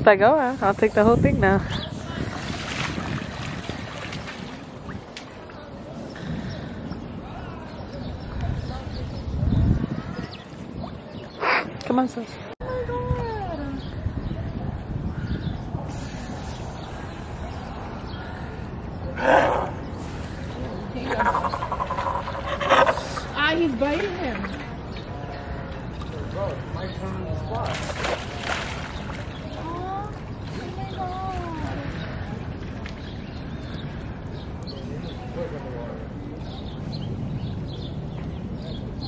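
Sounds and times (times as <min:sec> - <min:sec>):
splash of water: 0:02.0 - 0:05.6, 0:27.6 - 0:29.6
sea lion calling: 0:21.0 - 0:23.5.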